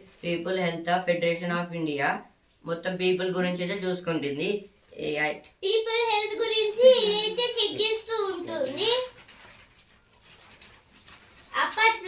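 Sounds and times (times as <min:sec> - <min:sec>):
child speaking: 0:05.4 - 0:09.2, 0:11.5 - 0:12.0.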